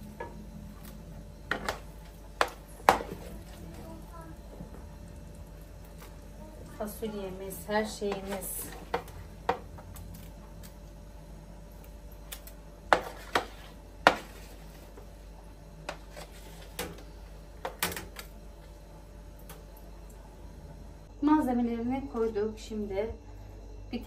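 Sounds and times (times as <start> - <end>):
spatula scraping metal tray: 12.9 - 14.8.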